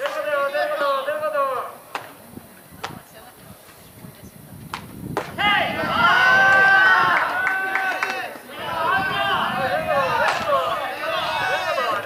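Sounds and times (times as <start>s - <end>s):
man shouting long call: 5.4s - 12.0s.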